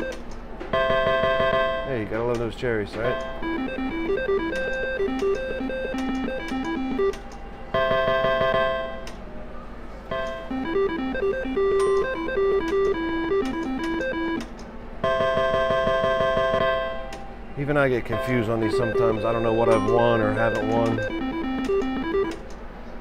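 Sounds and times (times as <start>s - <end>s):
slot machine beeping tune: 0.0s - 1.9s, 3.1s - 9.0s, 10.1s - 17.1s, 18.0s - 22.5s.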